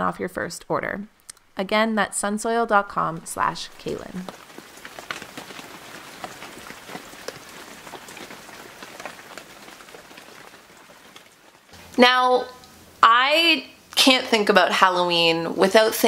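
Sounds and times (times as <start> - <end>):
rain pattering on a window: 2.2 - 16.0.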